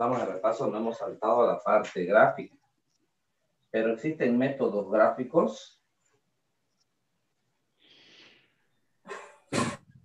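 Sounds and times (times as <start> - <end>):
person coughing: 9.1 - 10.0.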